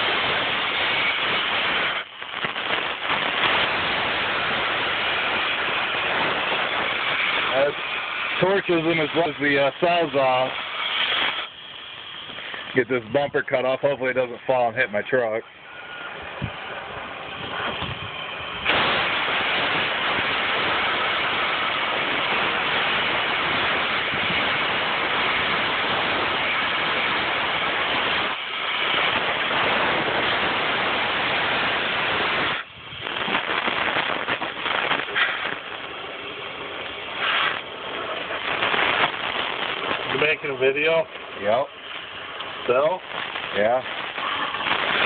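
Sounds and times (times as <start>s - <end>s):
cutting torch flame hissing: 0.0s - 45.0s.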